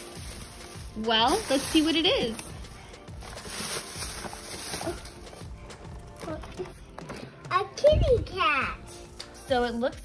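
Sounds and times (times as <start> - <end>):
tissue paper rustling: 0.0 - 6.7
background music: 0.0 - 10.0.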